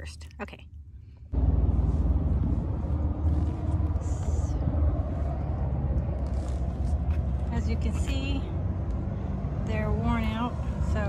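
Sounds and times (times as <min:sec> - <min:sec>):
vehicle engine rumbling: 0:00.9 - 0:11.0.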